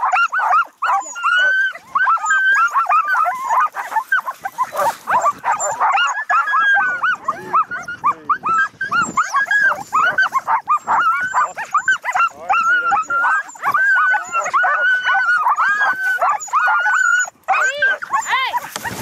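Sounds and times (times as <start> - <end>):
sled dogs barking and yelping: 0.0 - 19.0.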